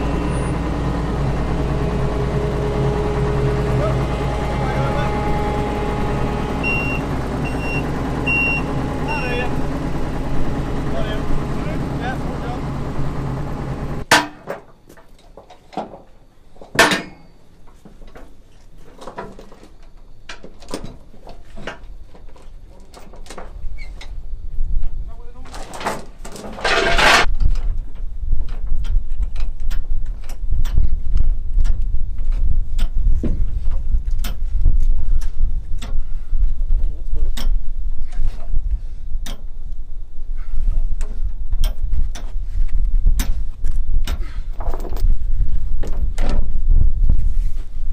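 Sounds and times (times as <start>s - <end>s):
diesel engine running: 0.0s - 14.1s
short high beeps: 6.6s - 9.4s
wind on microphone: 27.2s - 47.9s.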